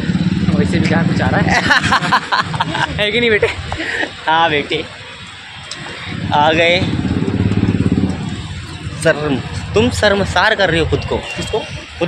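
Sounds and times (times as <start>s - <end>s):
motorcycle passing: 0.0s - 4.0s, 4.6s - 10.8s.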